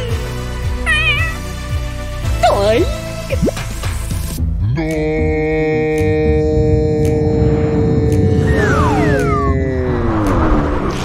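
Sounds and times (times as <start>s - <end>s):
cat meowing: 0.8s - 1.6s
background music with low beat: 2.3s - 10.9s.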